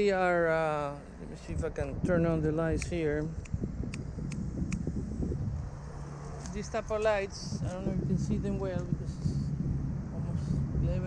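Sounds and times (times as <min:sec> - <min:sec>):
traffic rumble: 0:00.0 - 0:11.0
wind: 0:00.0 - 0:11.0.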